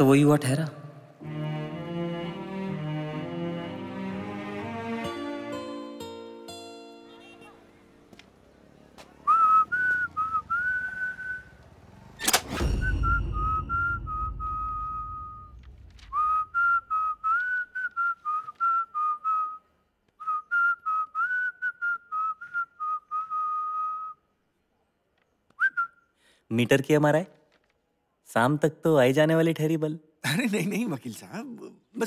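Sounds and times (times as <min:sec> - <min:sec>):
person whistling a jaunty tune: 0:09.3 - 0:11.5, 0:12.7 - 0:24.2, 0:25.6 - 0:26.0
loud thud with low rumble: 0:12.4 - 0:16.5.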